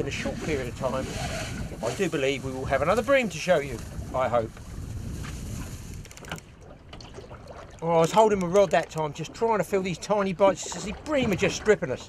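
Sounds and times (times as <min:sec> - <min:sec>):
sea around a boat: 0:00.0 - 0:12.0
wind: 0:00.0 - 0:12.0.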